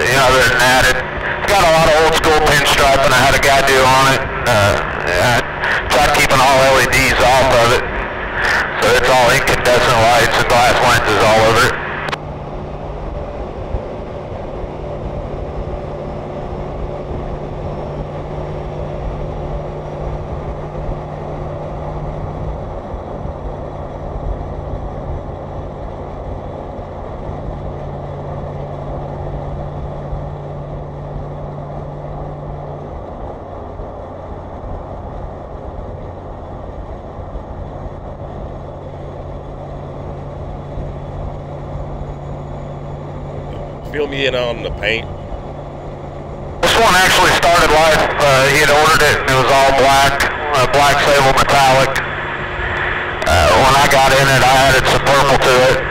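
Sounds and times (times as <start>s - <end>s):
low engine hum: 0.0s - 55.9s
road noise: 0.0s - 55.9s.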